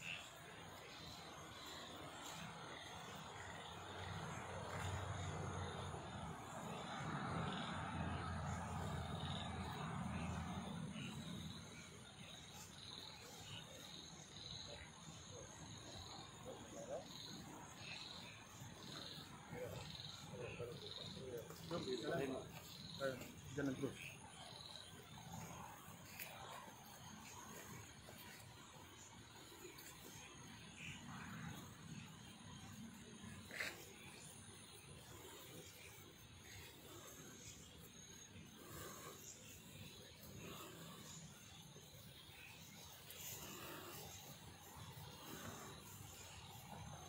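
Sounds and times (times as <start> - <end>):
night insects chirping: 0.0 - 47.0.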